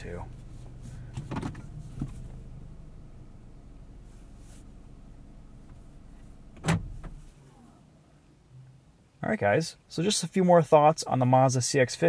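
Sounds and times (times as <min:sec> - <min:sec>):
car engine and tyres humming: 0:00.0 - 0:09.0.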